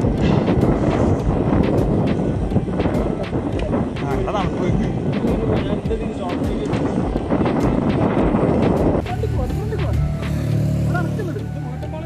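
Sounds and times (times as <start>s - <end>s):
bicycle road rumble: 0.0s - 12.0s
wind buffeting microphone: 0.0s - 12.0s.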